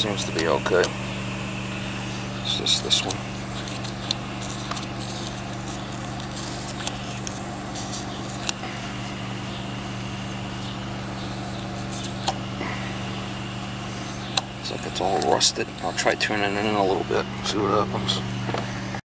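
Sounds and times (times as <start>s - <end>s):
low machine hum: 0.0s - 19.0s.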